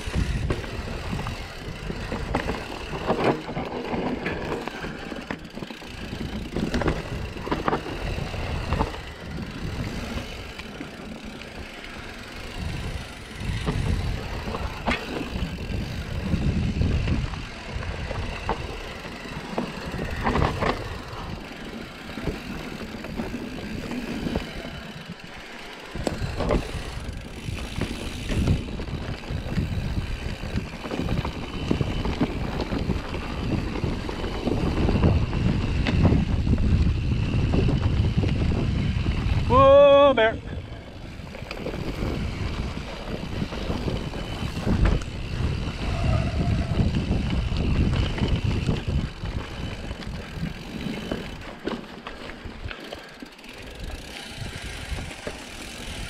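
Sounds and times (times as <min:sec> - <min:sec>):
wind rushing over microphone: 0:00.0 - 0:51.5, 0:53.7 - 0:56.0
bike clacking and rattling: 0:00.0 - 0:56.0
bike tyres rumbling over dirt: 0:00.0 - 0:56.0.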